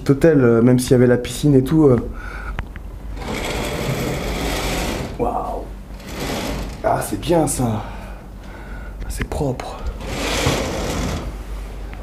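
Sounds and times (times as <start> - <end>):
curtain runners rattling on rail: 3.2 - 5.2, 6.0 - 7.0, 10.0 - 11.3.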